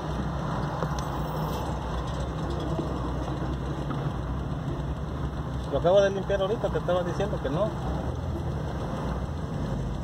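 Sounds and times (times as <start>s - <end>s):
car engine idling: 0.0s - 10.0s
street noise: 0.0s - 10.0s.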